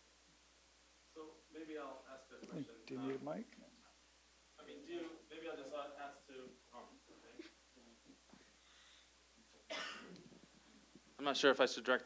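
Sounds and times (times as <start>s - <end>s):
person coughing: 9.7s - 10.2s.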